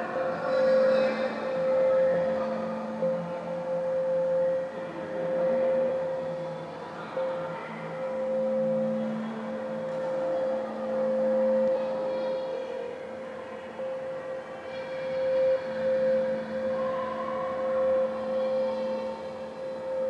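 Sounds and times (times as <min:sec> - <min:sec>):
high sustained electronic tone: 0:00.0 - 0:20.0
low electronic drone: 0:00.0 - 0:20.0.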